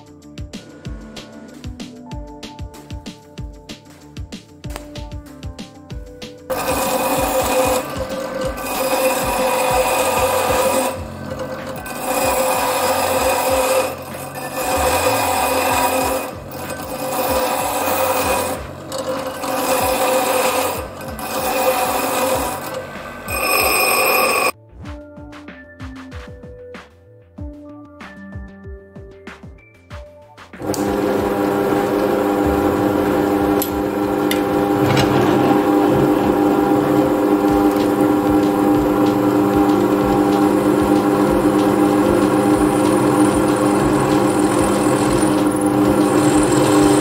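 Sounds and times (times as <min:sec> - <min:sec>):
bench grinder grinding steel: 0:06.5 - 0:24.6, 0:30.6 - 0:47.0.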